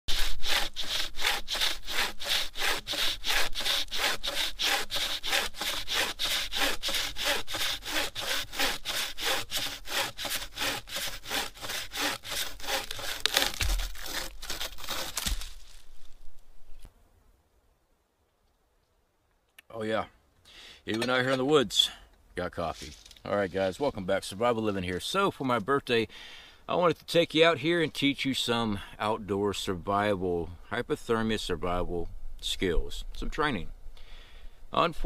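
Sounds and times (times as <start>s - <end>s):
saw cutting through log: 0.1s - 15.6s.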